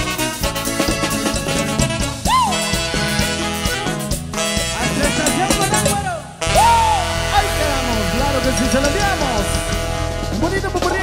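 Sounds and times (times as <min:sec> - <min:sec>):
band playing cumbia: 0:00.0 - 0:11.0.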